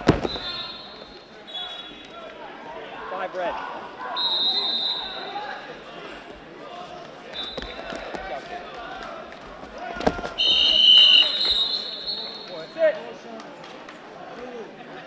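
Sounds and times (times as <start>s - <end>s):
wrestler thrown onto mat thud: 0.0s - 0.6s
crowd shouting and chatter: 0.0s - 15.0s
shrill referee whistle blasts: 0.2s - 2.1s, 4.1s - 5.4s, 7.4s - 7.8s, 10.4s - 12.7s.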